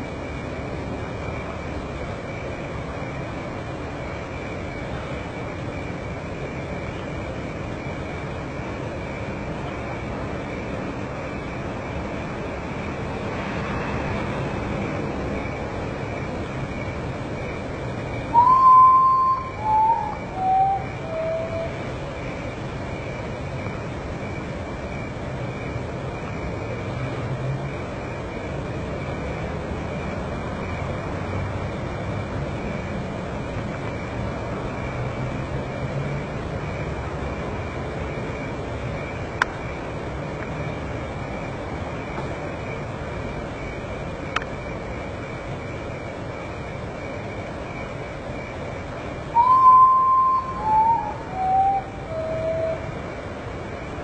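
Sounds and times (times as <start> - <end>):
low steady hum: 0.0 - 27.2
thin high steady tone: 16.2 - 23.7, 46.8 - 54.0
bird whistling mournful song: 18.2 - 22.5, 49.3 - 53.0.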